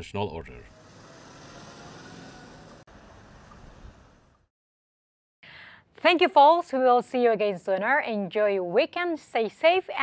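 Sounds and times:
street traffic hum: 0.3 - 4.4.

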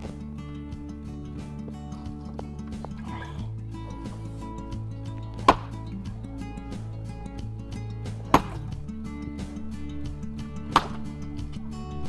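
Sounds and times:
background music: 0.0 - 12.0
heavy tool striking rock: 5.3 - 5.9, 8.1 - 8.8, 10.7 - 11.1.

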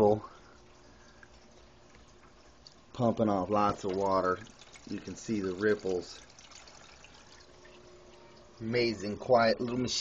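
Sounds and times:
aquarium filter running: 0.0 - 10.0
water trickling: 0.0 - 10.0.

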